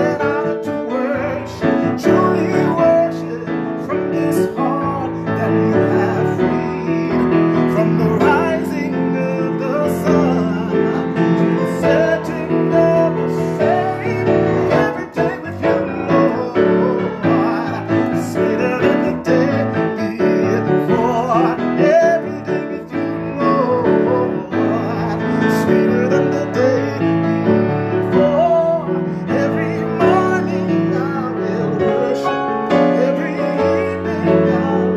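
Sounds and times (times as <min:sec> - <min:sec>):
grand piano chords: 0:00.0 - 0:34.9
man singing: 0:00.0 - 0:34.9.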